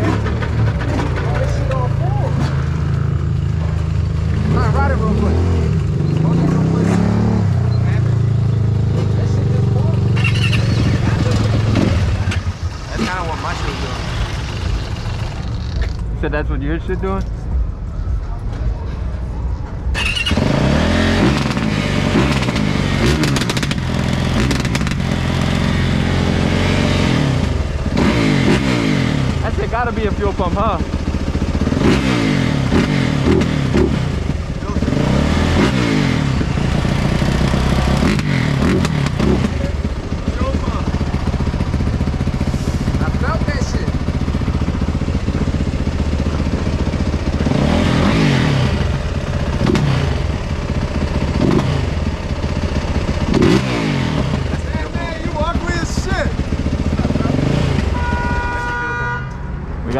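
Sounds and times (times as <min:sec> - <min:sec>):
dirt bike engines idling and revving: 0:00.0 - 0:59.9.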